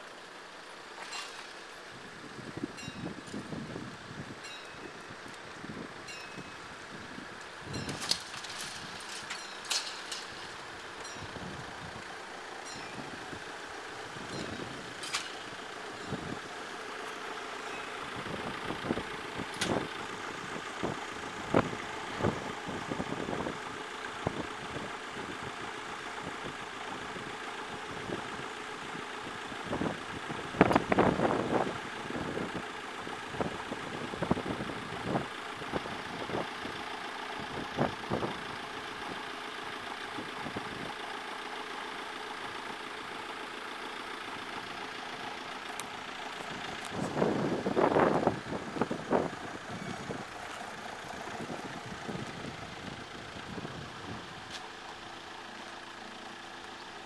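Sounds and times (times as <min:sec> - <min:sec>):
vehicle engine idling: 0:00.0 - 0:57.0.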